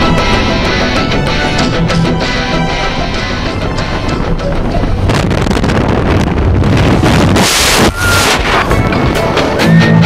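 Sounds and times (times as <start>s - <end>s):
wind rushing over microphone: 3.6s - 9.8s.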